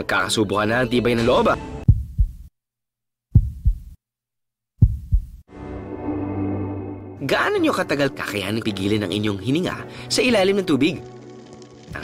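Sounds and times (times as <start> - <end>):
heartbeat double thumps: 1.8 - 2.5, 3.3 - 4.0, 4.8 - 5.5.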